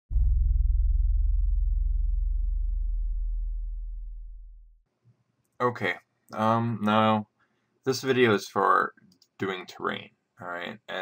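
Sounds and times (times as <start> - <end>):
deep low intro tone: 0.1 - 4.8.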